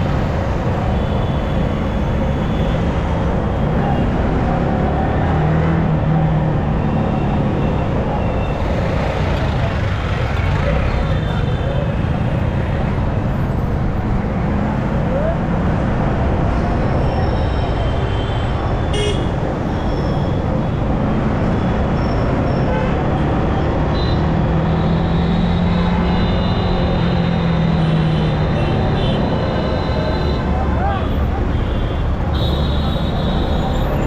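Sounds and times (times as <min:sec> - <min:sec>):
motorcycle road noise: 0:00.0 - 0:34.0
vehicle horns honking: 0:18.9 - 0:19.3, 0:31.6 - 0:33.9.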